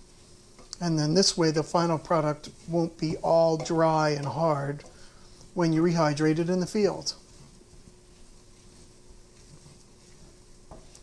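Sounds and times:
faint steady hum: 0.0 - 11.0
wooden spoon scraping a pan: 0.0 - 11.0.

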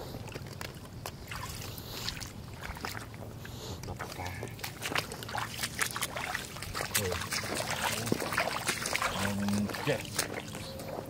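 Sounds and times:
small water splashes: 0.0 - 11.0.

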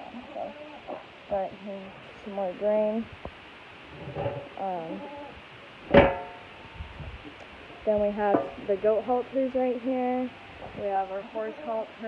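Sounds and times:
metal drum lid clanking shut: 5.9 - 6.4.

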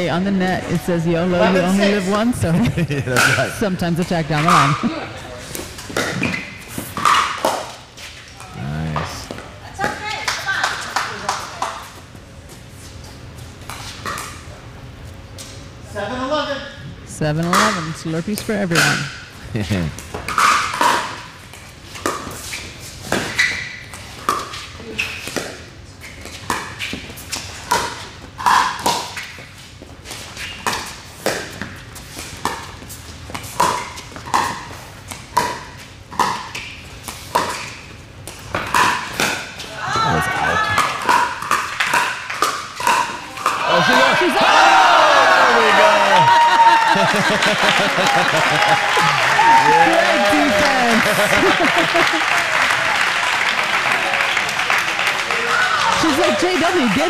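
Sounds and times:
crowd shouting and cheering: 0.0 - 5.2, 39.7 - 41.0, 43.3 - 57.0
loud applause: 43.3 - 57.0.

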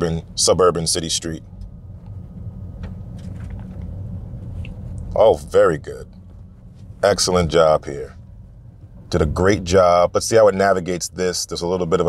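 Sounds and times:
road and tyre rumble: 0.0 - 12.0.

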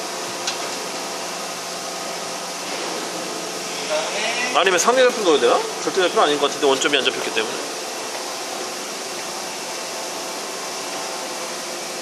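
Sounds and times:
faint machinery hum: 0.0 - 12.0
machinery fan-like noise: 0.0 - 12.0.

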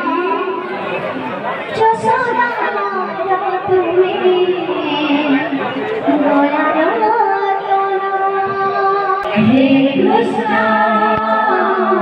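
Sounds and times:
crowd chatter: 0.0 - 12.0
woman chanting over loudspeaker: 1.7 - 12.0.

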